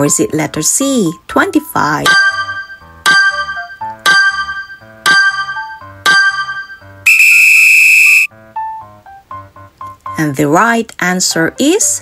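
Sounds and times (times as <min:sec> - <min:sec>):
soft keyboard background music: 0:00.0 - 0:07.0, 0:08.3 - 0:12.0
electronic buzzer alarm tone: 0:07.1 - 0:08.3.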